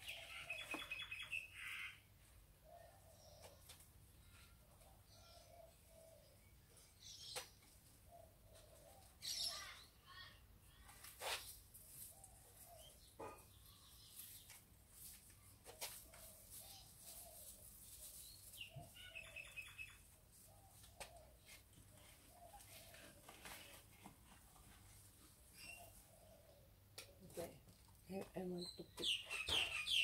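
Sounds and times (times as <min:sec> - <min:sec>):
rustling of leaves: 0:13.8 - 0:19.4.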